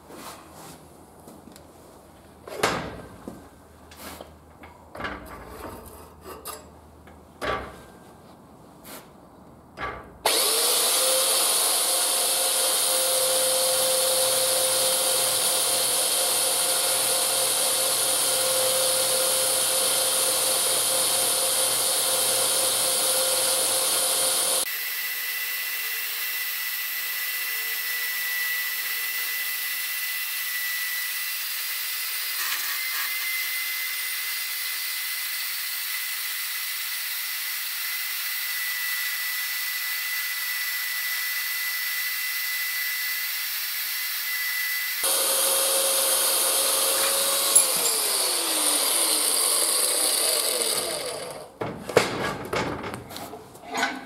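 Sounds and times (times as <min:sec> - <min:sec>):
blade cutting metal tube: 0:10.2 - 0:51.6
metal-cutting bandsaw running: 0:10.2 - 0:51.6.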